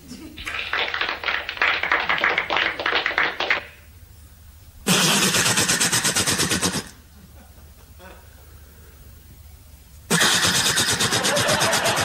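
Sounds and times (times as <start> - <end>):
faint room hum: 0.0 - 12.0
audience applause: 0.4 - 3.7.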